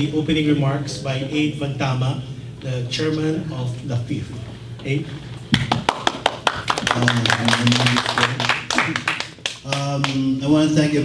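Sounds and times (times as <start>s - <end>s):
people clapping: 5.5s - 10.3s.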